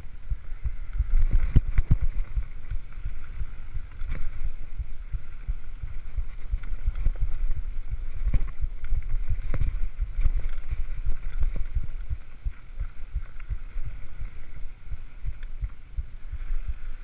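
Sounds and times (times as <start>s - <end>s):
tyre hiss and rushing air: 0.0s - 17.0s.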